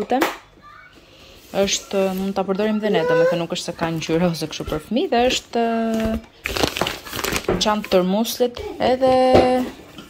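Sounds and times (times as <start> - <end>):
plastic bag crinkling: 1.6 - 8.5
high voice speaking: 2.6 - 3.7.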